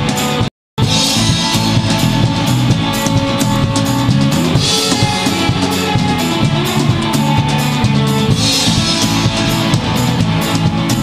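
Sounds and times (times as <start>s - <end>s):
drum kit beat: 0.0s - 11.0s
electric guitars: 0.0s - 11.0s.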